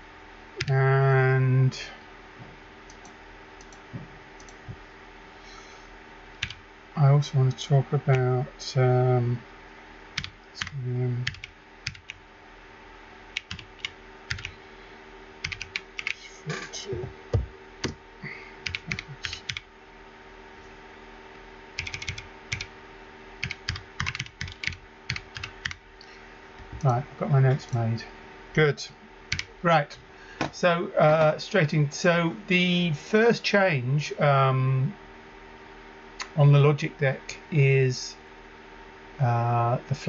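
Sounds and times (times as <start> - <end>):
low room hum: 0.0 - 40.0
typing on computer keyboard: 6.4 - 6.6, 10.2 - 12.2, 13.4 - 14.5, 15.4 - 16.2, 18.6 - 19.6, 21.8 - 22.7, 23.4 - 25.8.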